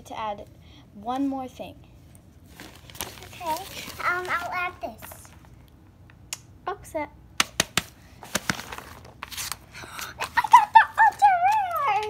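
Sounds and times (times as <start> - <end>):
paper rustling: 2.4 - 5.6, 7.8 - 12.0.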